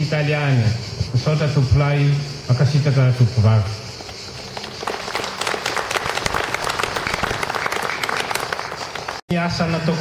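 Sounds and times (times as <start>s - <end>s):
audience applauding: 4.6s - 9.2s.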